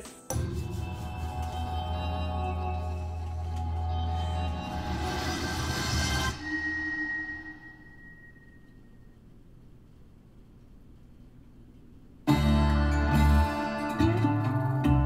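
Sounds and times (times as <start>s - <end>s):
thin high tone: 0.3s - 9.4s.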